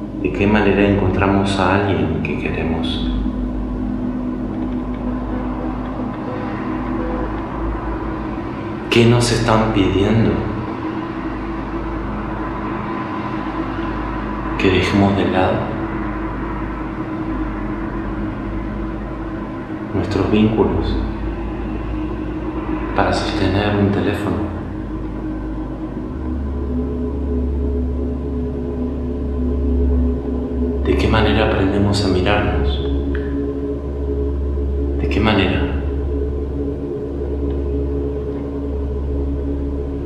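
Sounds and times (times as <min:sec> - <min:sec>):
faint hum: 0:00.0 - 0:40.0
low rumble: 0:00.0 - 0:40.0
low steady drone: 0:00.0 - 0:40.0.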